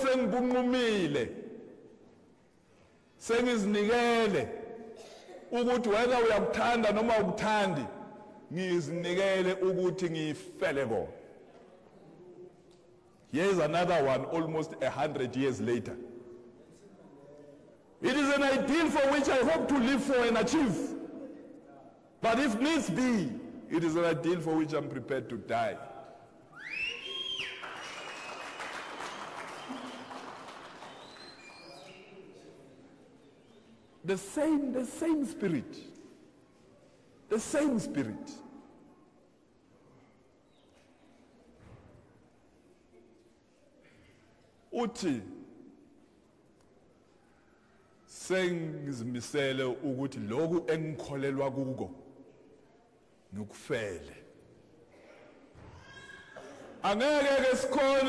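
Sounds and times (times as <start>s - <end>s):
man speaking: 0.0s - 1.6s, 3.2s - 11.2s, 13.3s - 16.2s, 18.0s - 26.2s, 34.0s - 36.0s, 37.3s - 38.6s, 44.7s - 45.5s, 48.1s - 52.1s, 53.3s - 54.3s, 56.8s - 58.0s
rising whistle: 26.6s - 28.7s
steady whistle tone: 26.6s - 30.1s, 30.8s - 32.2s
audience applauding: 26.9s - 31.9s.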